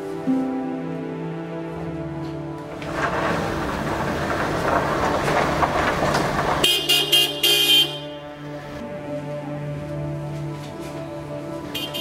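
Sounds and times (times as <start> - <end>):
loud rough rushing noise: 2.7 - 7.3
car horn honking: 6.6 - 8.2, 11.7 - 12.0.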